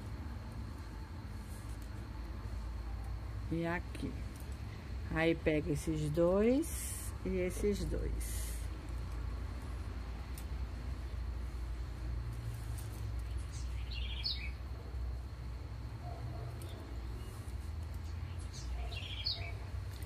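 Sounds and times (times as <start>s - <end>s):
steady low hum: 0.0s - 20.0s
bird chirping: 13.2s - 14.6s, 16.6s - 19.7s.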